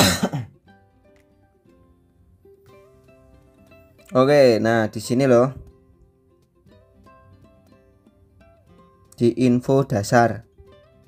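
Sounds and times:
person clearing throat: 0:00.0 - 0:00.6
quiet background music: 0:00.0 - 0:11.0.

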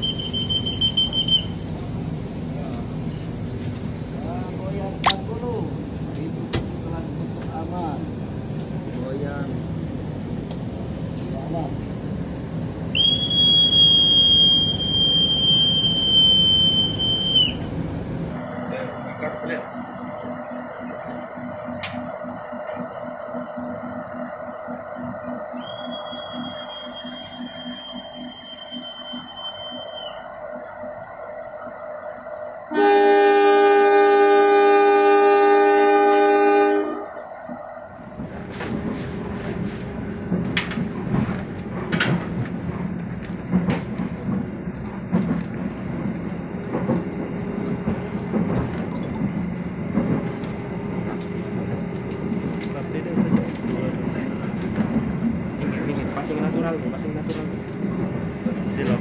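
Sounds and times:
high steady whistle: 0:00.0 - 0:01.6, 0:12.9 - 0:17.7, 0:25.5 - 0:30.7
train coach rumbling on rails: 0:00.0 - 0:59.0
locomotive horn blast: 0:32.7 - 0:37.1.

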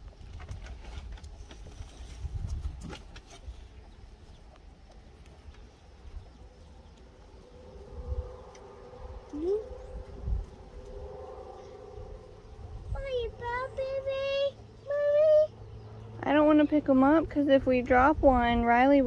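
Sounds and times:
child's wordless voice: 0:09.3 - 0:09.8, 0:12.9 - 0:15.6.

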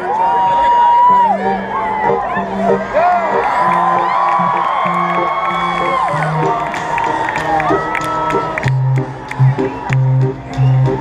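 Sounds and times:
crowd cheering and whooping: 0:00.0 - 0:11.0
live rock band playing: 0:01.4 - 0:11.0.

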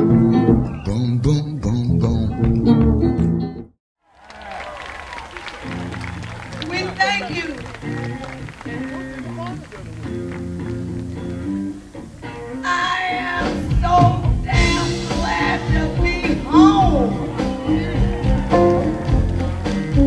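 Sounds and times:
live band with electric guitars: 0:00.0 - 0:00.9, 0:04.2 - 0:20.0
song playing: 0:05.3 - 0:20.0.

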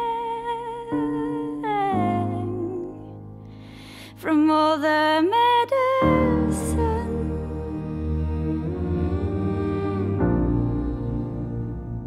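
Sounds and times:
wordless hummed vocal note: 0:06.1 - 0:12.0.

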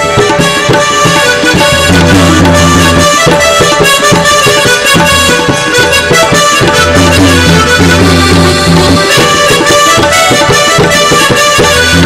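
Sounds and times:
drum beats: 0:00.0 - 0:12.0
harmonium: 0:00.0 - 0:12.0.

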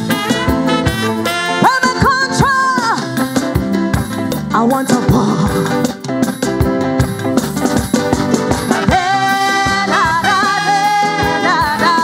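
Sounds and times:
calypso band playing: 0:00.0 - 0:12.0.

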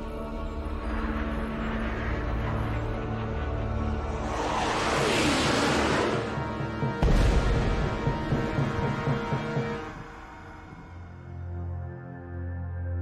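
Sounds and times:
background music: 0:00.0 - 0:13.0
falling whoosh: 0:03.6 - 0:07.0
deep boom: 0:06.2 - 0:09.4.

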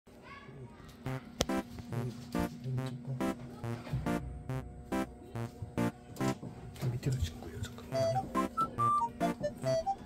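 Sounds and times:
playful background music: 0:07.9 - 0:10.0.

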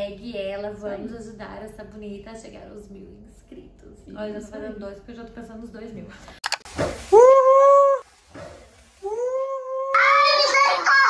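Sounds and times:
woman screaming: 0:07.1 - 0:08.0, 0:09.0 - 0:11.0.

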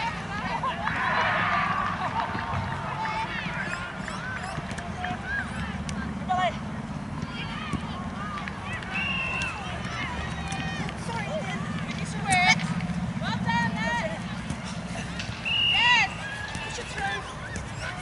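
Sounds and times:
low background hum: 0:00.0 - 0:18.0.

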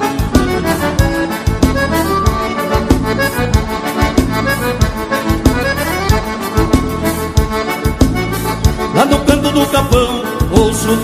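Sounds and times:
accordion melody: 0:00.0 - 0:11.0
band playing dance beat: 0:00.0 - 0:11.0.

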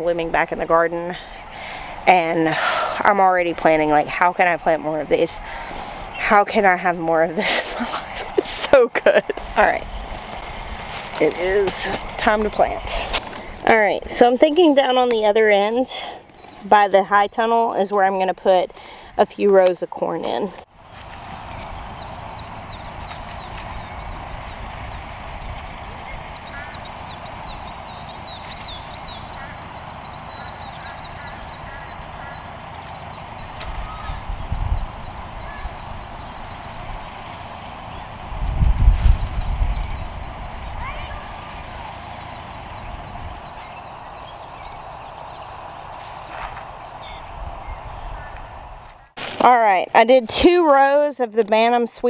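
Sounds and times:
birds calling: 0:00.0 - 0:17.0, 0:18.7 - 0:49.2
low rumbles: 0:00.0 - 0:51.7.

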